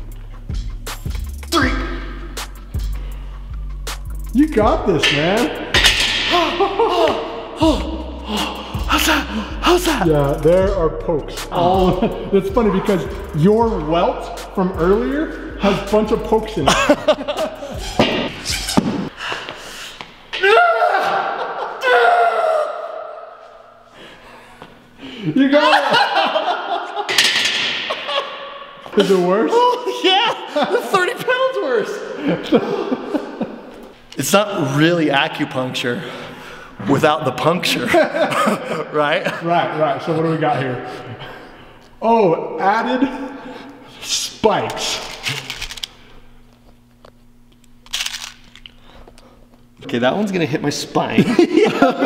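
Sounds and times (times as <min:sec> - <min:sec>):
man crying out in strain: 0:06.2 - 0:10.0, 0:20.4 - 0:23.1.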